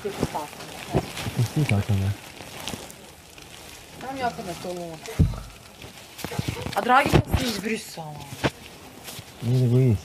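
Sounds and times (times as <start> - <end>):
faint steady hiss: 0.0 - 10.0
low quiet voices: 1.4 - 2.2.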